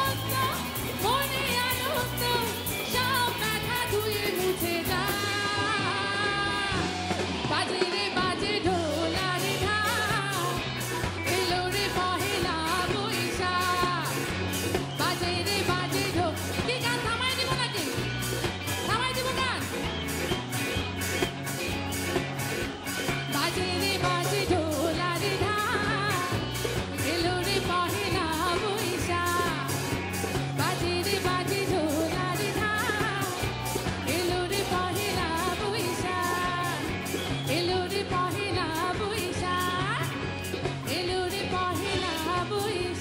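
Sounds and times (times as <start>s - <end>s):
woman singing pop song: 0.0s - 18.1s, 23.3s - 43.0s
bass: 0.0s - 43.0s
drums: 0.0s - 43.0s
electric guitar: 0.0s - 43.0s.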